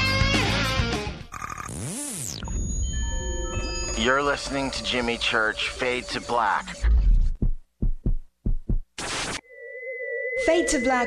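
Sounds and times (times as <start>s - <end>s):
heartbeat double thumps: 6.7s - 9.0s.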